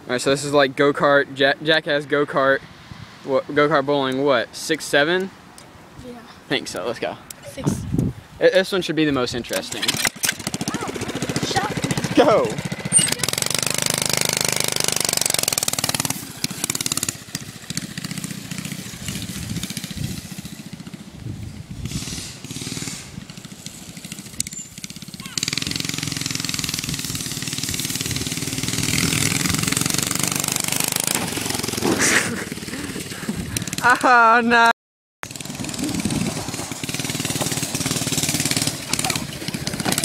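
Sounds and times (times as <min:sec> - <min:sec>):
go-kart engine running hard: 0:09.8 - 0:21.1, 0:21.8 - 0:34.1, 0:35.2 - 0:40.0.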